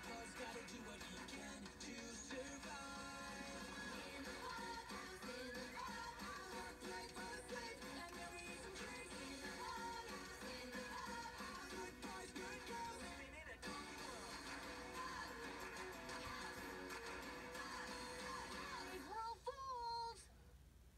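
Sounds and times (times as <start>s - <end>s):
pop-rock song from tv speaker: 0.0s - 19.4s.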